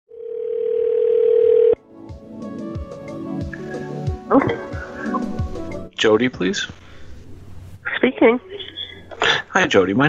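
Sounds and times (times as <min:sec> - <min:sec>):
telephone line tone: 0:00.1 - 0:01.8
phone line hiss: 0:00.2 - 0:01.8.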